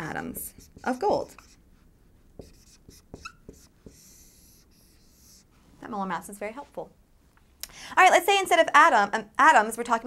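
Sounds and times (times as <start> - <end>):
marker scratching on whiteboard: 0.0 - 5.5
marker tapping on whiteboard: 2.4 - 5.1.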